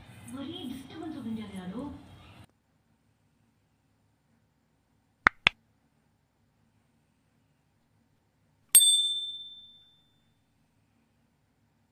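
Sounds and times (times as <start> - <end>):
notification bell ding: 8.8 - 9.8.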